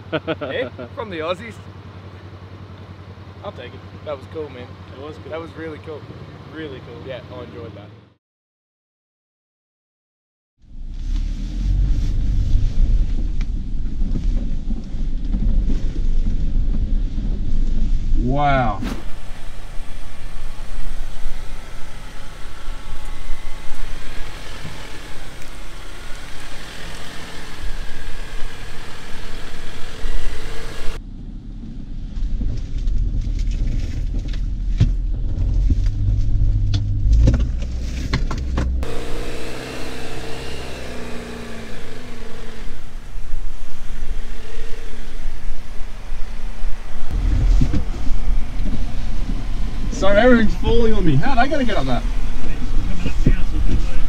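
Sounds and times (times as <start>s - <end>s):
engine running at low revs: 10.6s - 54.0s
sharp knocks from rough ground: 32.2s - 38.9s.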